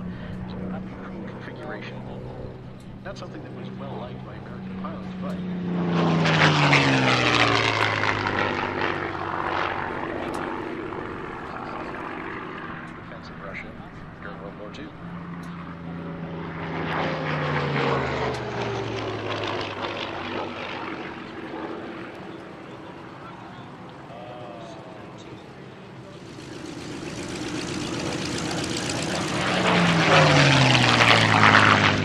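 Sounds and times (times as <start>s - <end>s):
propeller plane passing low: 0.0s - 32.0s.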